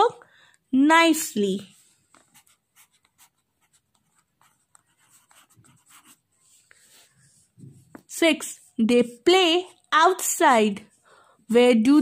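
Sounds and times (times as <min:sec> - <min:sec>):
pencil scratching on paper: 0:01.6 - 0:09.8.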